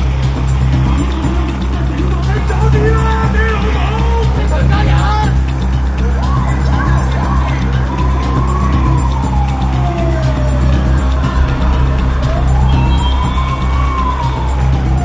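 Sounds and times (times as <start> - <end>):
background music with bass: 0.0 - 15.0
siren wailing: 8.2 - 15.0.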